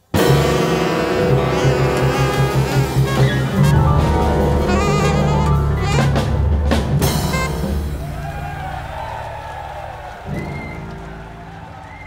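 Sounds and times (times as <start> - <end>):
jazz band closing chord: 0.1 - 8.2.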